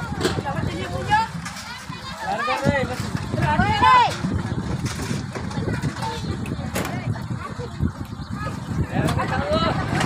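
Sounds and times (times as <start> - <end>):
people talking at once: 0.0 - 4.5, 5.3 - 10.0.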